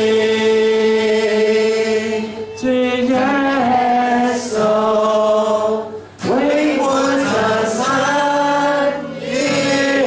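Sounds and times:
acoustic guitar: 0.0s - 10.0s
congregation singing: 0.0s - 10.0s
man singing lead: 0.0s - 10.0s.

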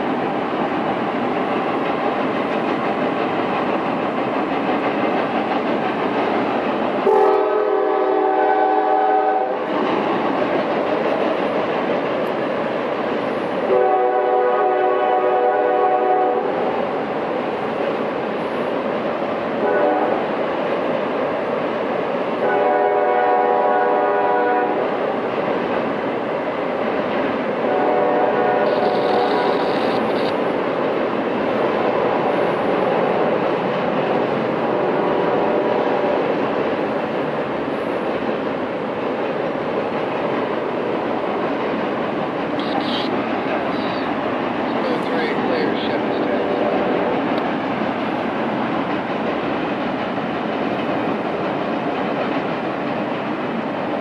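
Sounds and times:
train rumbling across bridge: 0.0s - 54.0s
locomotive horn blasts: 7.1s - 9.6s, 13.7s - 16.5s, 19.6s - 20.2s, 22.4s - 24.8s, 27.7s - 29.5s.

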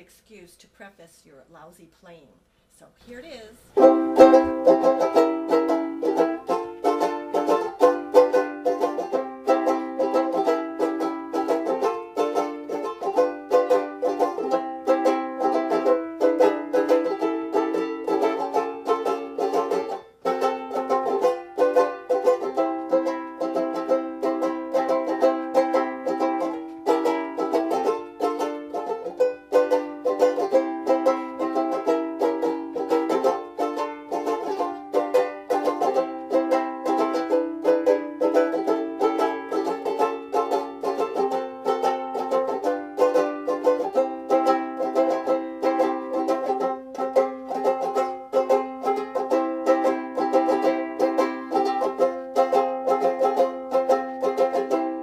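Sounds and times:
banjolele strummed: 3.3s - 55.0s.

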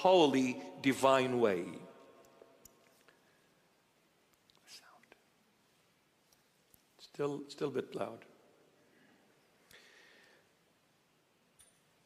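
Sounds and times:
faint whisper: 4.5s - 5.4s.

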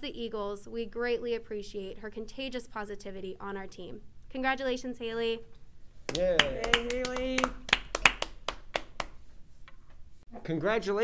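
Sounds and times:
people clapping hands: 6.1s - 9.2s.

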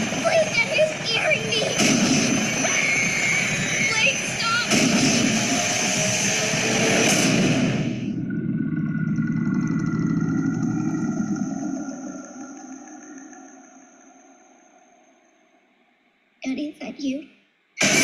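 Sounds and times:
dense rumbling swell: 4.9s - 15.4s.

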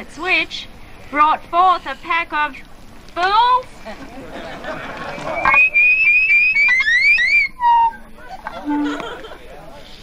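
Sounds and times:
loud shrill whistling: 5.2s - 9.0s.

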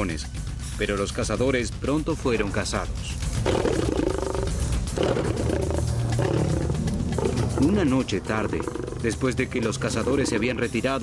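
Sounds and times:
lion growling: 3.3s - 11.0s.

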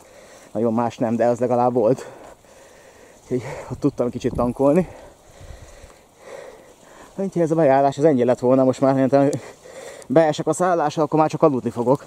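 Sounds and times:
soft breaths: 0.0s - 7.6s, 8.8s - 10.3s.

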